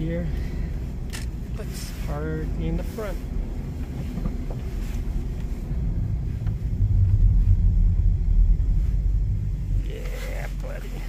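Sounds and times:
truck engine rumble inside cabin: 0.0s - 11.0s.

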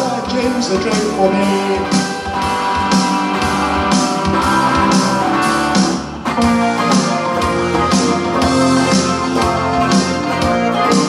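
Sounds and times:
band music with electric guitar: 0.0s - 11.0s.

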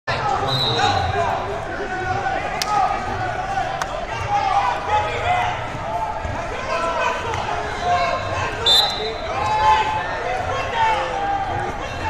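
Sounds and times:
chatter of voices in a hall: 0.1s - 12.0s
referee's whistle blast: 0.4s - 1.2s, 8.6s - 9.3s.

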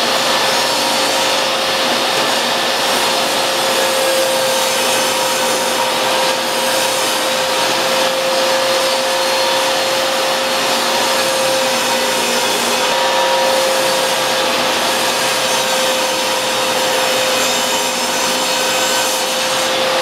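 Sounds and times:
table saw cutting plank: 0.0s - 20.0s.

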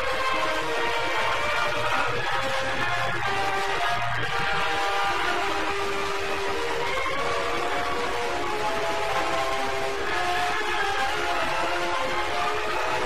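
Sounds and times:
steady background noise: 0.0s - 13.0s.

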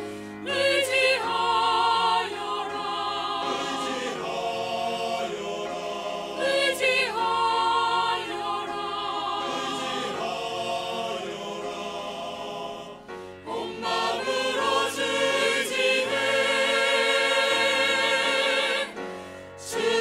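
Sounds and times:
church choir singing: 0.0s - 20.0s
grand piano accompaniment: 0.0s - 20.0s.

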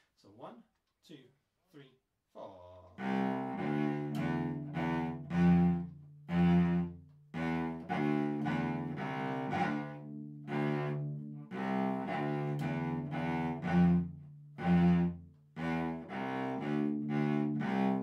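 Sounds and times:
bowed cello melody: 2.8s - 18.0s.

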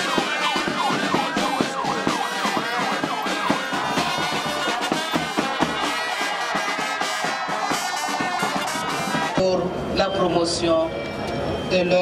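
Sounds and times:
siren yelping: 0.0s - 9.9s.

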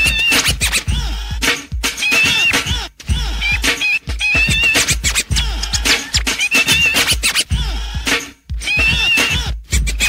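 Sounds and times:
heavy drum beat: 0.0s - 10.0s
turntable scratching: 0.0s - 10.0s.

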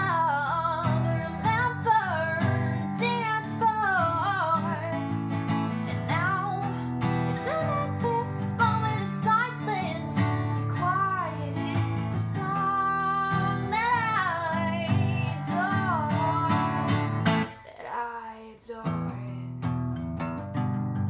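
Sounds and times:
strummed acoustic guitar: 0.0s - 17.6s, 18.8s - 21.0s
woman singing: 0.0s - 19.7s.

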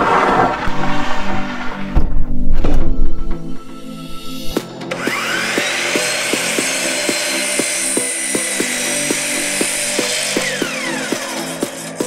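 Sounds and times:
background music with beat: 3.2s - 12.0s
miter saw cutting wood: 4.5s - 12.0s.

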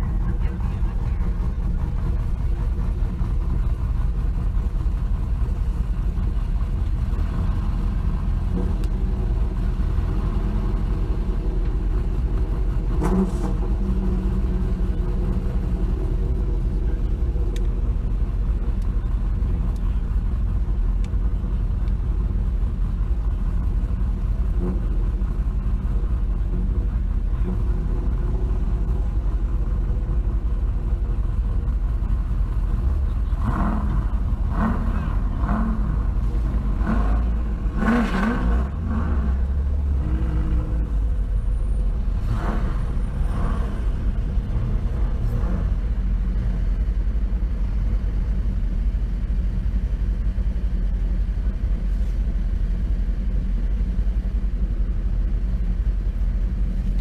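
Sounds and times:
car engine rumble inside cabin: 0.0s - 57.0s.

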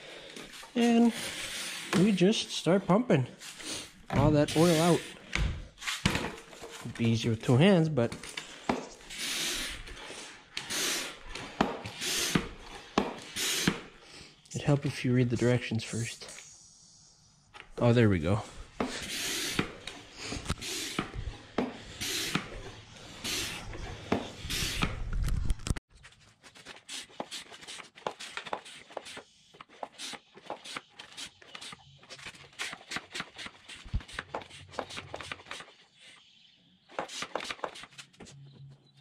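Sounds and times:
hand pump whooshing strokes: 3.4s - 6.9s, 8.7s - 14.0s, 18.8s - 25.2s, 26.7s - 38.1s.

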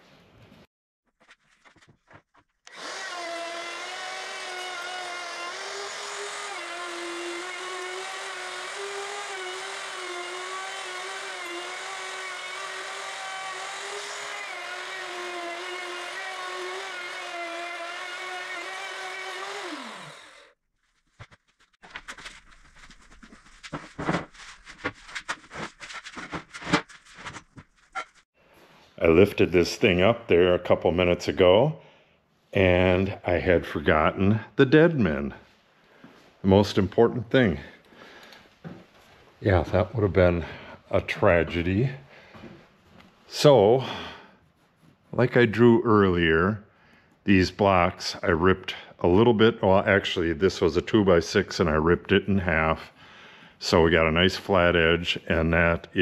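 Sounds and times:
router motor whine: 2.7s - 20.6s.

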